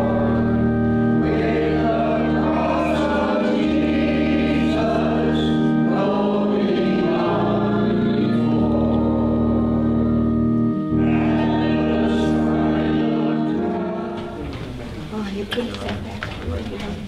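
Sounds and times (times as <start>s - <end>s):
people singing: 0.0s - 10.2s, 10.9s - 14.8s
church organ chords: 0.0s - 15.1s.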